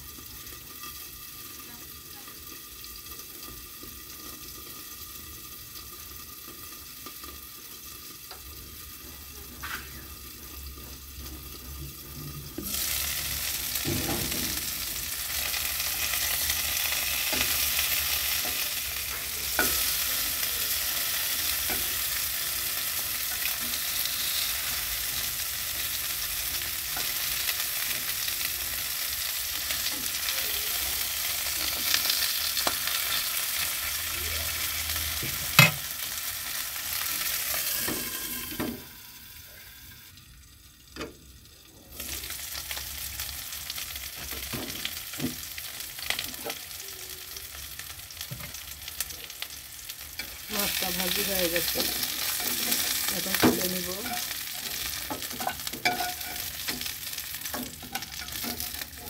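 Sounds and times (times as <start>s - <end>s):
fish sizzling in oil: 0.0s - 59.0s
spatula scraping a pan: 51.2s - 59.0s.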